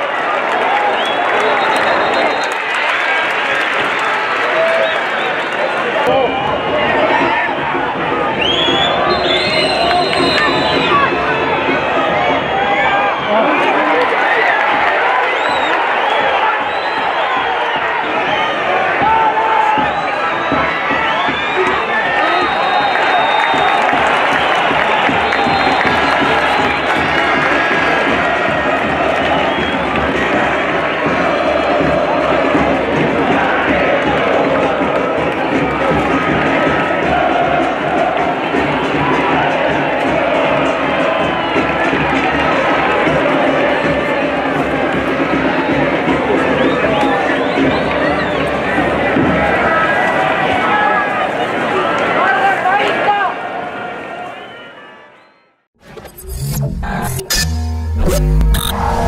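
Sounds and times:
stadium crowd cheering: 0.0 - 55.7.

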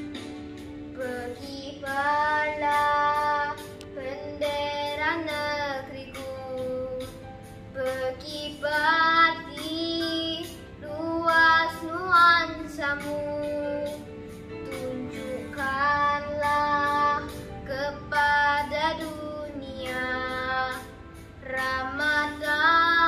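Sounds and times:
backing music with steady beat: 0.0 - 23.0.

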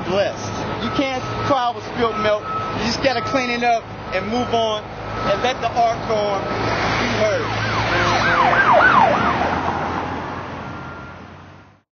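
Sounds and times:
street noise: 0.0 - 11.8
emergency siren yelping: 0.8 - 11.3.

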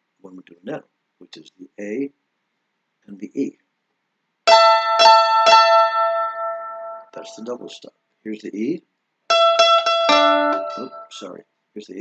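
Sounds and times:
mandolin double stop: 4.5 - 7.6, 9.3 - 11.3.

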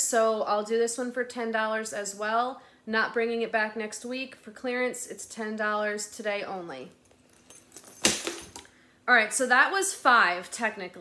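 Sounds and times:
metal chain straps jangling: 6.9 - 8.7
purse rustling: 7.0 - 8.6.

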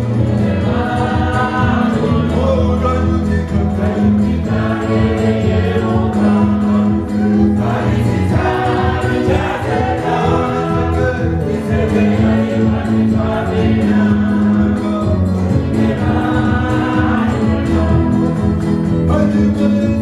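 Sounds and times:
voices singing together: 0.0 - 20.0.

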